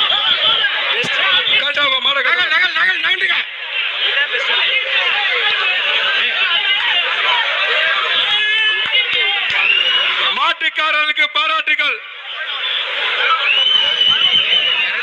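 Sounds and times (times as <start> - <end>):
crowd of men shouting: 0.0 - 15.0.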